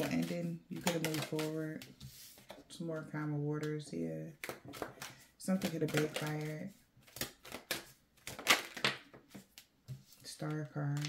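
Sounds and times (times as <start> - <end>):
cards being shuffled: 0.0 - 2.6, 4.4 - 11.0.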